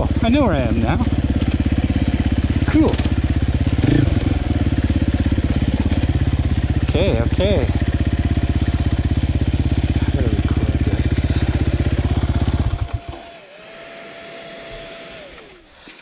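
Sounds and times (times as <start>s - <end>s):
motorcycle engine running at low revs: 0.0s - 13.5s.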